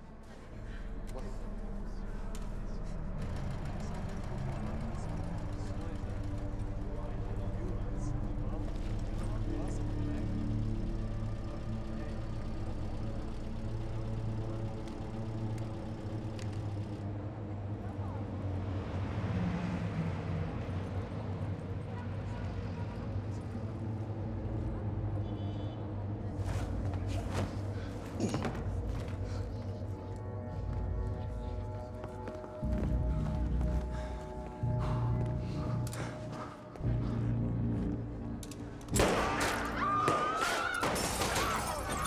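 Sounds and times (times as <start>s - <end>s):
steady low hum: 0.0s - 21.6s, 22.5s - 39.7s
traffic and engine noise: 0.0s - 39.0s.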